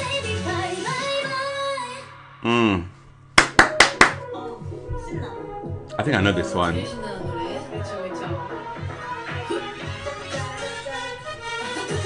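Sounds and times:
sharp hand claps: 0:03.4 - 0:04.2.

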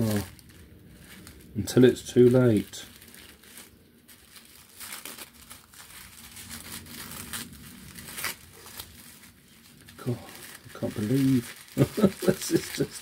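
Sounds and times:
tissue paper rustling: 0:00.0 - 0:13.0.

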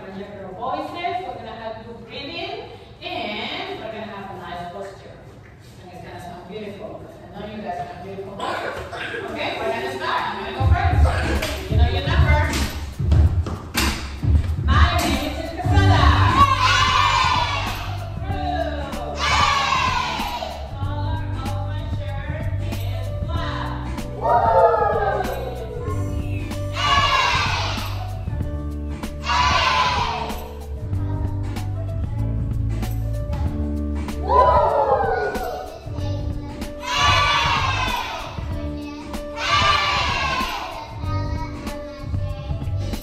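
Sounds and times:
backing beat: 0:10.6 - 0:43.0.

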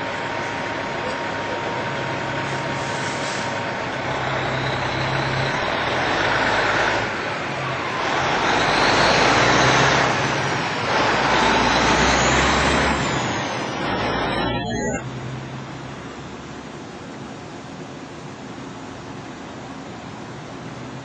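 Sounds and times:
vehicles driving past: 0:00.0 - 0:17.4.

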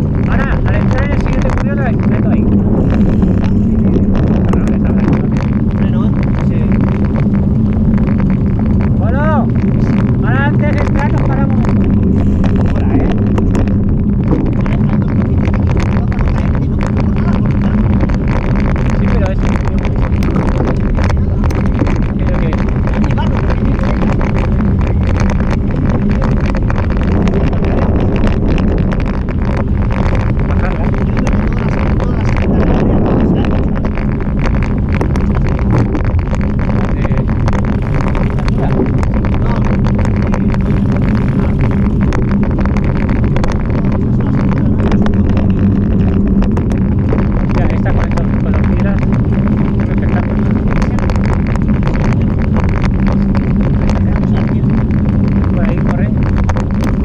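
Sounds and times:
stones and bike rattling: 0:00.0 - 0:57.0
tyres rumbling on gravel: 0:00.0 - 0:57.0
wind on microphone: 0:00.0 - 0:57.0.

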